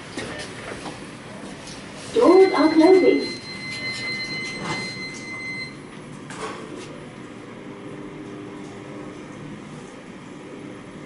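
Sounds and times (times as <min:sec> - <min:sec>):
elevator running hum: 0:00.0 - 0:11.0.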